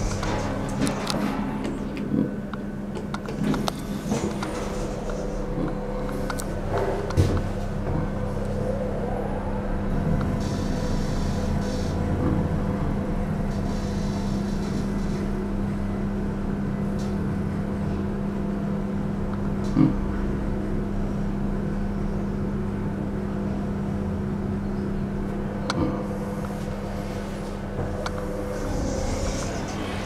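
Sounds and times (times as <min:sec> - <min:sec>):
elevator running hum: 0:00.0 - 0:30.0.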